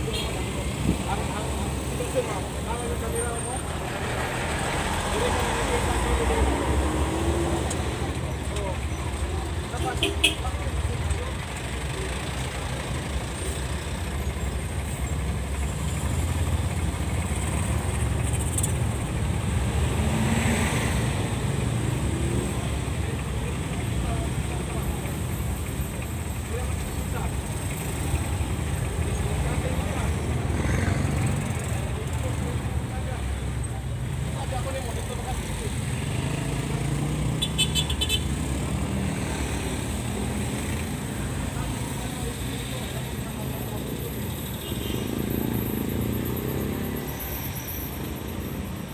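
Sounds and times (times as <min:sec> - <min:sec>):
engines idling: 0:00.0 - 0:48.9
passing street traffic: 0:00.0 - 0:48.9
vehicle horn tooting: 0:09.8 - 0:10.5, 0:37.4 - 0:38.3.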